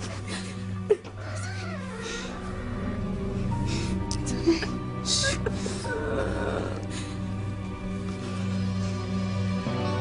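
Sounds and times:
soft background music: 0.0 - 10.0
woman crying: 4.1 - 6.9.

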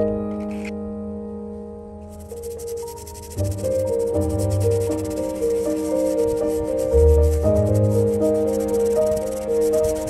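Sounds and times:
brush scrubbing a gravestone: 2.2 - 10.0.

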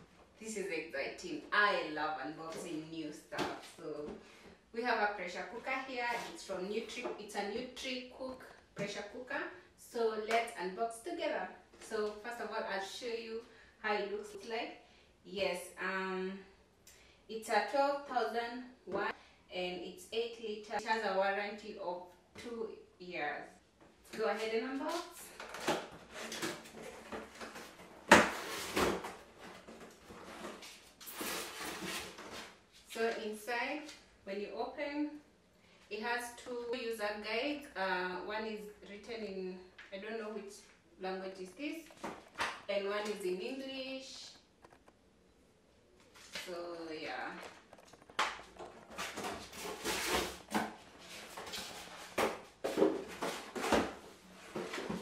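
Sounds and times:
cardboard and paper rustling: 47.4 - 55.0.

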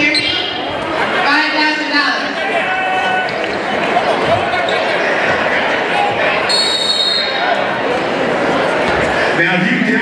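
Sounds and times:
crowd in echoing hall: 0.0 - 10.0.

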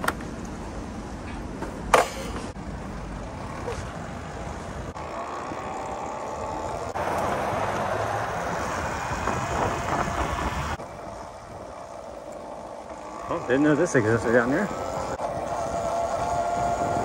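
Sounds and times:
wind on microphone: 8.3 - 12.0, 14.8 - 17.0.

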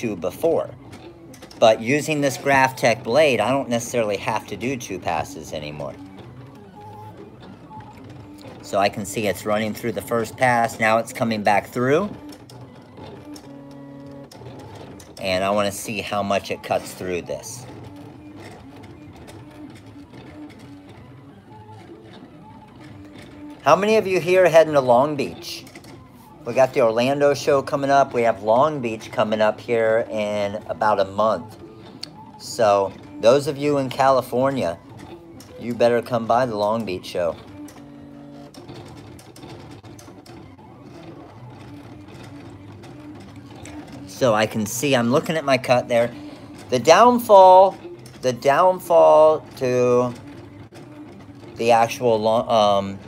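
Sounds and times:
cutter motors whining: 0.0 - 53.0.

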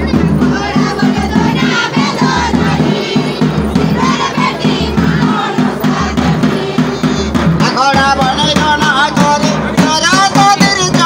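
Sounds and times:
quick drum beat: 0.0 - 11.0
voices singing: 0.0 - 11.0.

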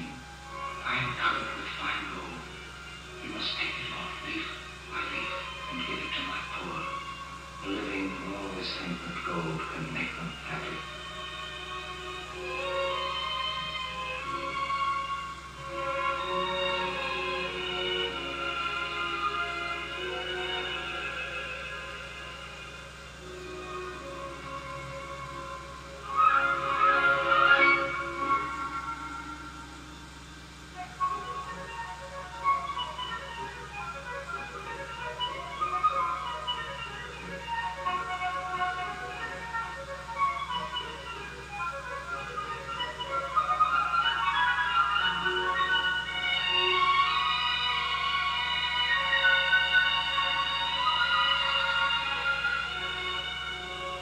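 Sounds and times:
film score sustained tones: 0.0 - 54.0
steady low hum: 0.0 - 54.0.

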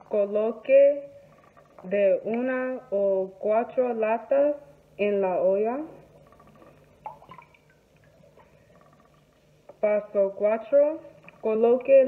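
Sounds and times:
small water splash: 6.2 - 8.8.

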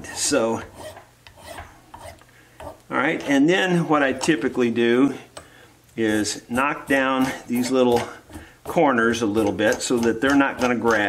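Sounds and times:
file rasping on wood: 0.0 - 3.5, 6.2 - 11.0.

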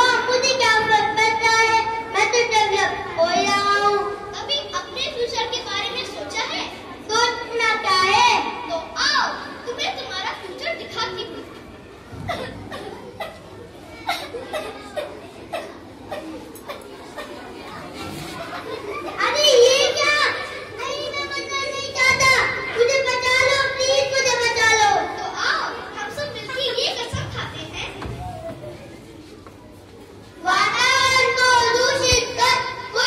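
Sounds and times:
child speaking: 0.0 - 11.6, 12.3 - 28.9, 30.4 - 33.0
low room murmur: 0.0 - 33.0.

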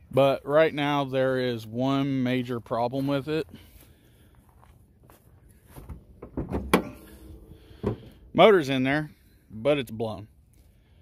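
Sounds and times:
car hood handling rattle: 5.8 - 8.2.

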